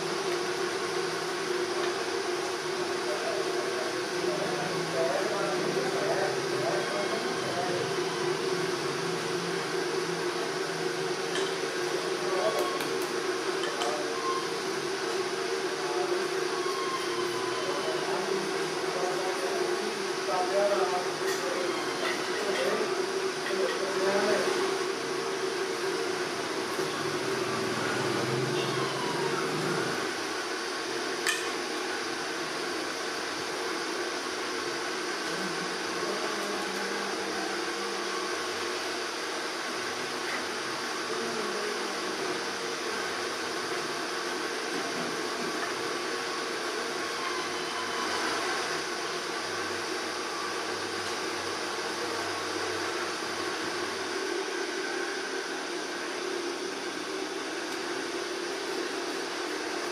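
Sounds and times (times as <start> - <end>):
mechanical hum and hiss: 0.0 - 59.9.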